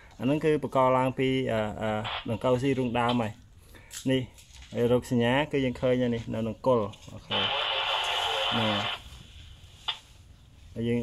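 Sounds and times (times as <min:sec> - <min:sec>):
man speaking: 0:00.2 - 0:03.4, 0:04.0 - 0:09.0, 0:10.8 - 0:11.0
steady hiss: 0:07.1 - 0:11.0.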